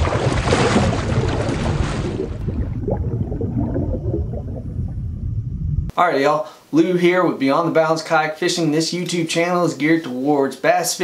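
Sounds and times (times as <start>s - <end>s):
water splash: 0.0s - 5.3s
underwater bubbling and rumble: 0.0s - 5.9s.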